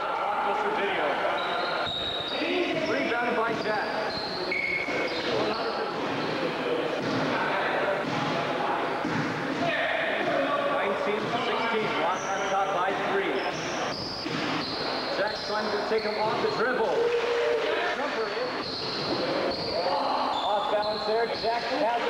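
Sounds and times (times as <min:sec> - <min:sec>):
players calling: 0:00.0 - 0:22.0
sneaker squeaks: 0:01.3 - 0:07.3, 0:11.1 - 0:22.0
basketball bouncing: 0:09.0 - 0:09.7.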